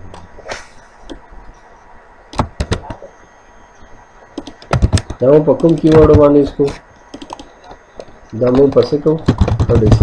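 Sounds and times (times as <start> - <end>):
keyboard clicks: 2.3 - 3.1, 4.4 - 10.0
person speaking: 4.8 - 10.0.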